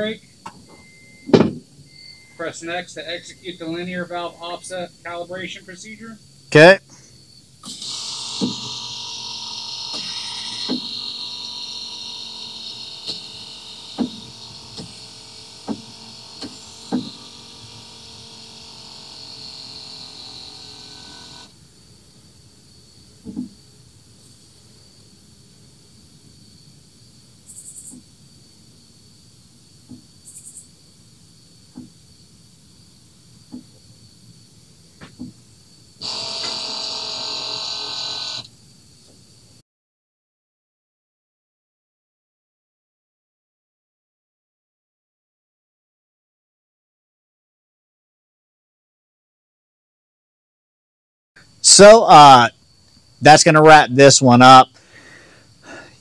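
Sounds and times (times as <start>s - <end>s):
electric pump motor whine: 7.6s - 21.6s, 36.0s - 38.5s.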